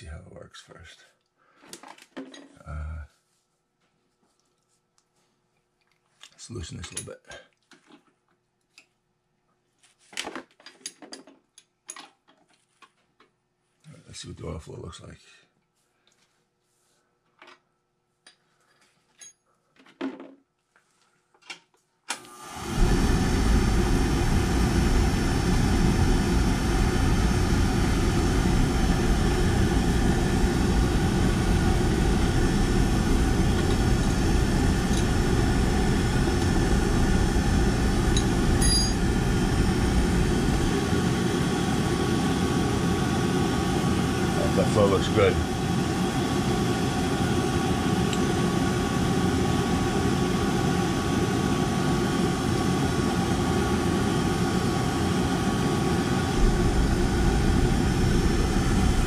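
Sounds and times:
oil burner running with even hum: 22.1s - 59.0s.

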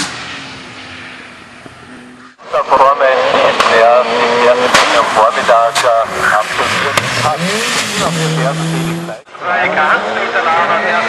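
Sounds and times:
race car engine revving: 0.0s - 11.0s
exhaust backfire cracks: 4.6s - 8.8s.

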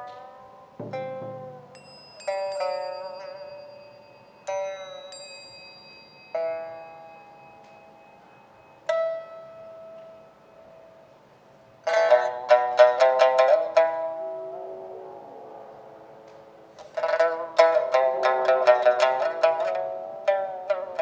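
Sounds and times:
bronze bowls ringing: 0.0s - 21.0s
pipa notes: 0.0s - 21.0s
low drum stroke: 0.8s - 1.8s.

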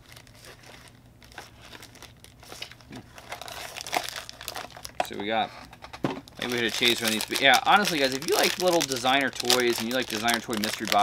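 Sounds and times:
packaging crinkling and tearing: 0.0s - 5.2s, 6.2s - 11.0s.

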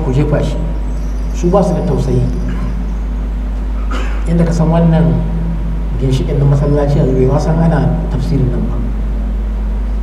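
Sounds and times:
man speaking: 0.0s - 0.8s, 1.4s - 2.8s, 4.2s - 9.0s
steady low hum: 0.0s - 10.0s.

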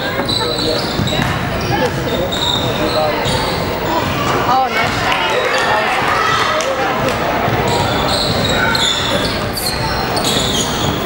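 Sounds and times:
shoe squeaks: 0.0s - 3.7s, 7.6s - 11.0s
chatter of people: 0.0s - 11.0s
basketball bouncing on hardwood: 1.0s - 2.0s.

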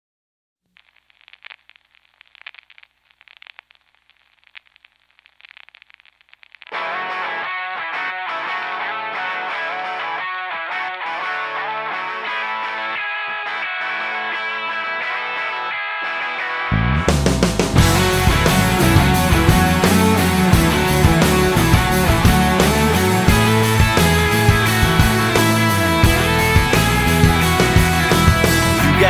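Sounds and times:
distorted electric guitar riff: 5.4s - 29.0s.

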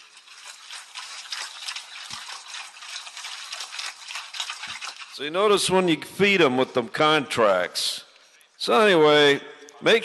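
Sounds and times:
pigs chewing and crunching feed: 0.0s - 7.0s.

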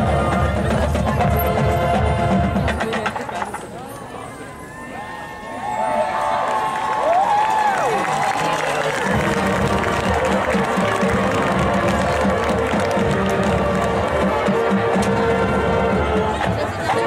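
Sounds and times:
marching band playing: 0.0s - 3.3s, 8.9s - 17.0s.

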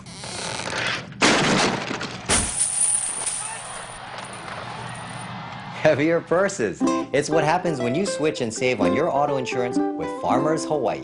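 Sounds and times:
coins clinking: 2.4s - 4.4s.

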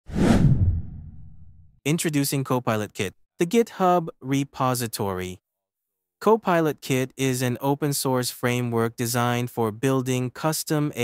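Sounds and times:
transition whoosh: 0.1s - 1.8s.

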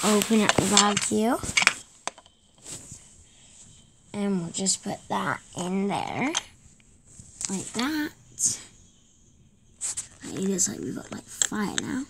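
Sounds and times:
faint handling noise: 0.0s - 3.9s.

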